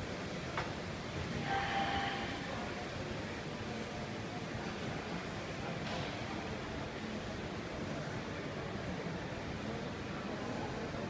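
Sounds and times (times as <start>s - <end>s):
shopping mall background hum: 0.0s - 11.0s.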